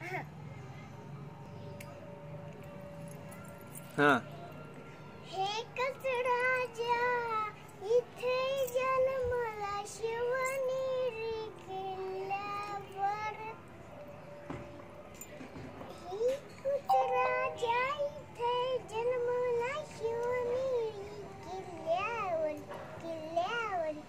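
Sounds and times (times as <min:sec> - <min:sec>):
girl singing: 0:05.3 - 0:13.6, 0:16.0 - 0:24.0.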